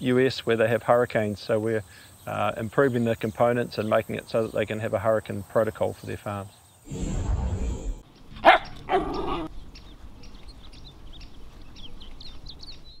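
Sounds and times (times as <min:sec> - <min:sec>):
low rumbling noise: 0:06.9 - 0:08.4
dog barking: 0:08.4 - 0:09.5.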